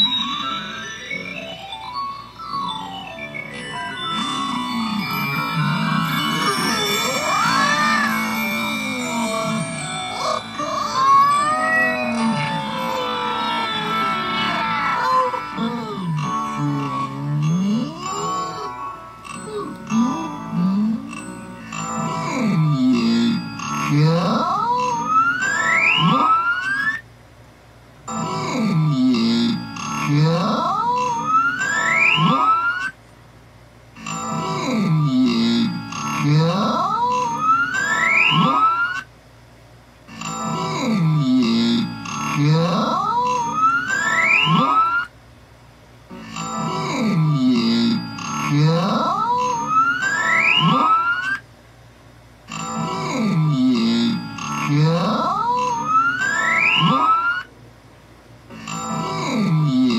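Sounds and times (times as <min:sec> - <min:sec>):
background music: 0:00.0 - 0:26.2.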